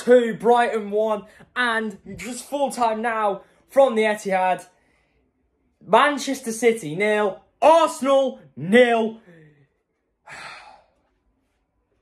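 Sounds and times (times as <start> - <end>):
man sighing: 10.2 - 11.0.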